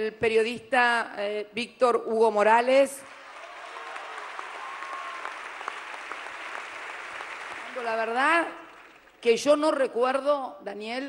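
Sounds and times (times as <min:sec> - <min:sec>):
large audience applauding: 0:03.0 - 0:09.3.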